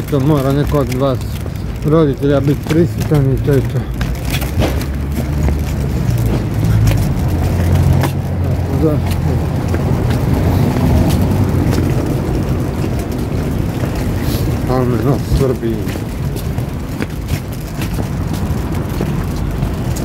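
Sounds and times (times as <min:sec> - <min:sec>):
steady low rumble: 0:00.0 - 0:20.0.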